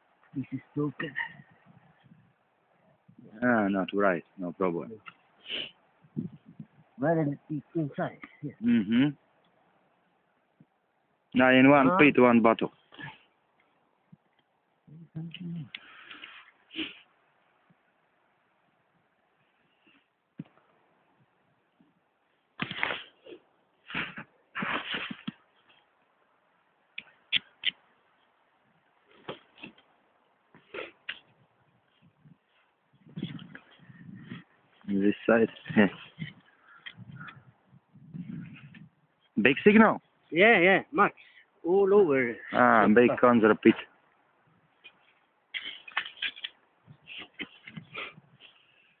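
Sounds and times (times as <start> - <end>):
shovel digging into earth: 22.6 - 23.2, 23.9 - 25.3
crunches through snowy brush: 22.6 - 25.8.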